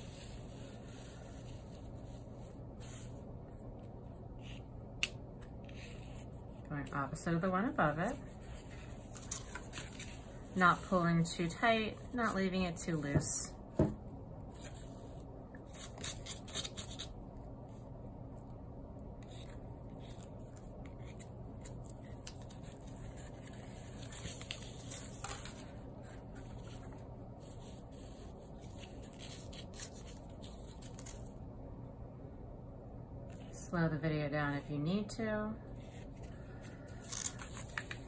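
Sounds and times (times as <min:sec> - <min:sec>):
low steady hum: 0:00.0 - 0:38.0.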